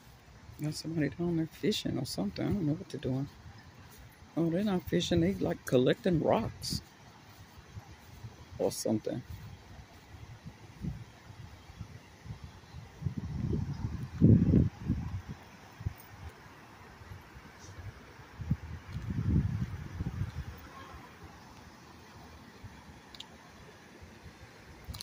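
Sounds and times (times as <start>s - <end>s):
faint steady hiss: 0.0s - 25.0s
wind buffeting microphone: 4.9s - 16.3s, 17.0s - 20.8s.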